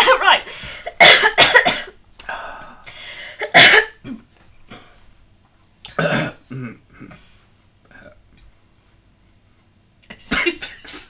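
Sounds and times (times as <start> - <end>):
person coughing: 0.0 - 2.0, 3.3 - 4.3, 5.9 - 7.2, 10.2 - 11.0.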